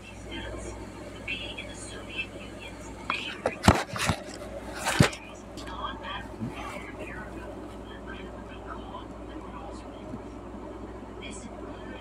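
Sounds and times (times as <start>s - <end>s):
faint whispering: 5.6s - 10.3s.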